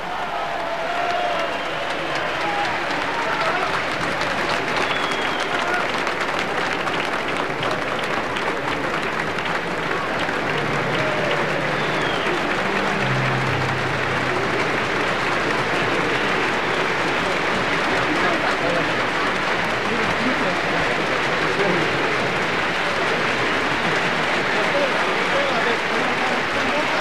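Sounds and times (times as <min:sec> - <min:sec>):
audience applauding: 0:00.0 - 0:27.0
scattered crowd voices: 0:00.0 - 0:27.0.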